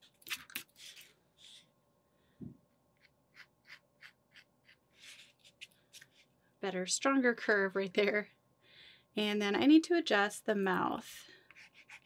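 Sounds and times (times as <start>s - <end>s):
pencil stroking on a panel: 3.0s - 6.3s, 11.0s - 12.0s.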